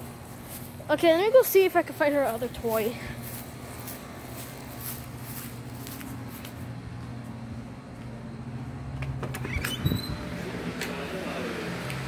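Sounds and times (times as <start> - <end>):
footsteps: 1.6 - 9.1
door squeaking open: 9.2 - 10.3.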